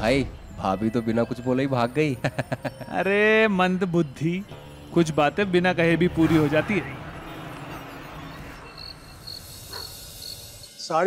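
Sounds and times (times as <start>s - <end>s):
crickets chirping: 7.2s - 11.0s.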